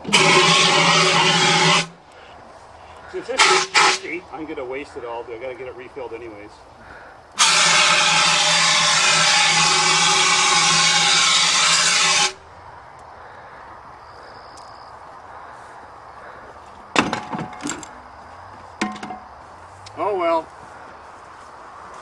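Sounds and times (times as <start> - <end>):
fire extinguisher hissing: 0.0 - 2.0, 3.2 - 4.2, 7.4 - 12.4.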